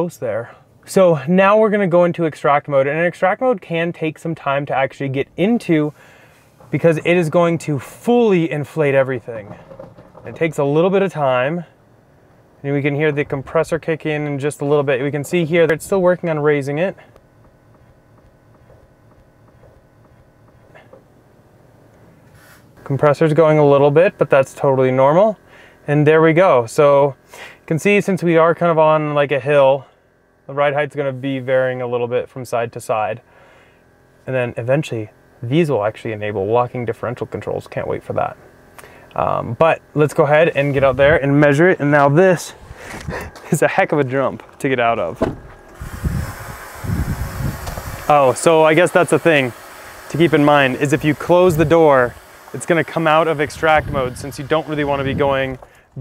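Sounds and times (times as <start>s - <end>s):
air compressor humming: 0.1s - 56.0s
air suspension hissing: 5.8s - 10.7s, 16.8s - 23.0s, 40.3s - 43.6s, 44.4s - 56.0s
light regular ticking: 15.6s - 23.0s
wind gusts on microphone: 45.8s - 48.1s.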